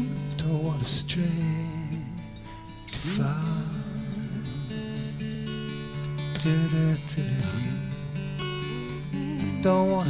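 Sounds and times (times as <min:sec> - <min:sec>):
acoustic guitars ringing chord: 0:00.0 - 0:10.0
guitar notes picked: 0:00.0 - 0:10.0
person humming softly: 0:08.6 - 0:10.0.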